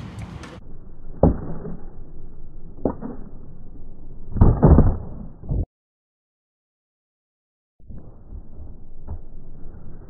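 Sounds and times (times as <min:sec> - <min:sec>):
skateboard wheels rolling on concrete: 0:00.0 - 0:00.6.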